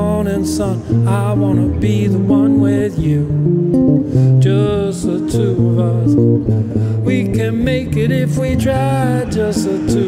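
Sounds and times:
guitar plucked chords: 0:00.0 - 0:10.0
person singing: 0:00.0 - 0:10.0.

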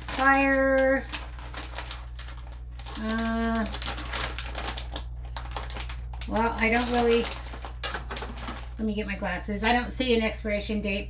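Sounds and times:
plastic snack bag crinkling: 0:00.0 - 0:09.4.

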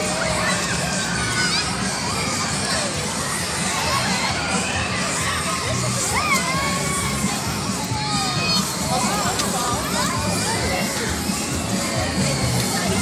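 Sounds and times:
children shouting and squealing: 0:00.0 - 0:13.0.

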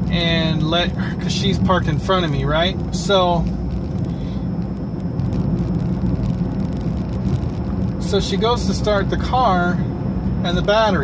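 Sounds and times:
car engine hum inside cabin: 0:00.0 - 0:11.0.

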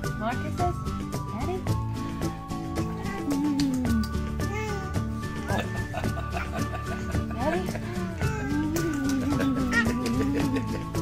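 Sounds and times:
background music with steady beat: 0:00.0 - 0:11.0
baby squealing: 0:07.9 - 0:10.4.

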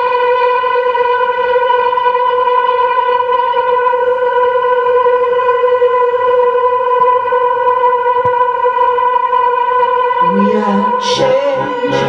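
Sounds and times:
sustained musical drone: 0:00.0 - 0:12.0.

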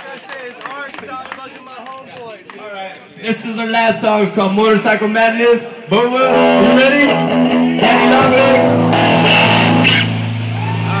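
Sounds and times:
crowd sounds: 0:00.0 - 0:11.0
electric guitar and bass sustaining: 0:06.2 - 0:11.0
low buzzing amplifier drone: 0:06.3 - 0:11.0.

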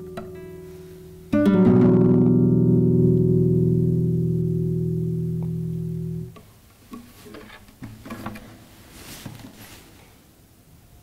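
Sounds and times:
acoustic guitar chord ringing: 0:00.0 - 0:06.3.

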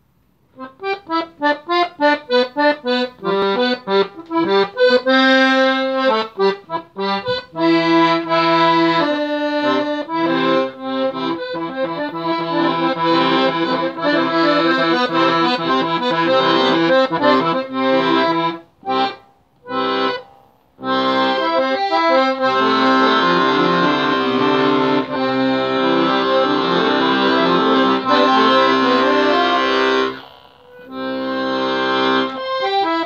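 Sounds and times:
piano accordion playing: 0:00.6 - 0:33.0.

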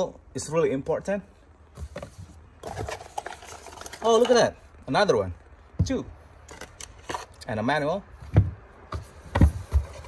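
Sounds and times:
cardboard box rustling and scraping: 0:01.7 - 0:04.2, 0:09.0 - 0:10.0.

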